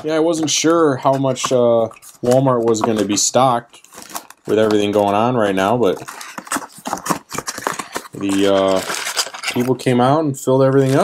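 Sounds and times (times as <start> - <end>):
packaging crinkling and rustling: 0.0 - 11.0.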